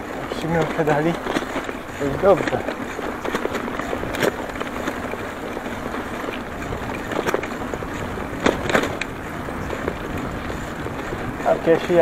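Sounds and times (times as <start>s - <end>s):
bicycle tyres rolling on concrete: 0.0s - 12.0s
bike knocking and rattling: 0.0s - 12.0s
wind rush: 3.6s - 12.0s.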